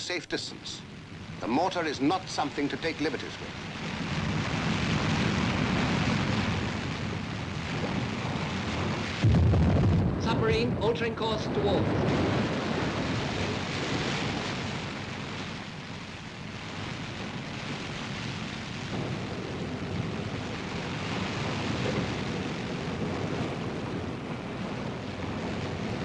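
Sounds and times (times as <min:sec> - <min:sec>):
rushing sea and wind: 0:00.0 - 0:26.0.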